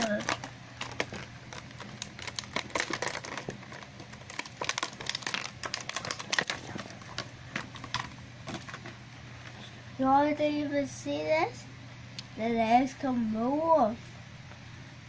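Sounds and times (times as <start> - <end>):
plastic packaging crinkling: 0.0 - 9.6.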